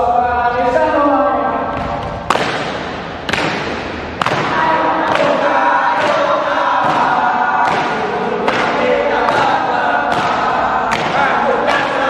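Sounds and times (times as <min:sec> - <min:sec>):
sharp percussive hits: 0:01.8 - 0:12.0
young voices chanting in unison: 0:04.2 - 0:12.0.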